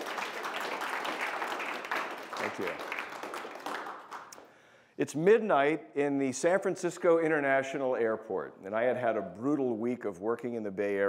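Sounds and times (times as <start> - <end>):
audience applause: 0.0 - 4.4.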